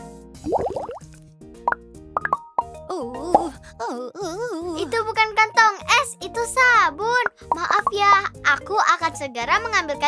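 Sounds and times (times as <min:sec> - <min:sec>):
light children's music: 0:00.0 - 0:10.0
cartoon bubble bloops: 0:00.4 - 0:01.1, 0:01.7 - 0:03.6.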